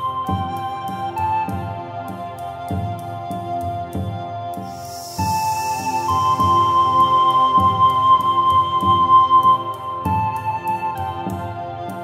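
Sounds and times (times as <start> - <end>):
flute music: 0.0 - 12.0
breathy hiss: 4.8 - 6.4.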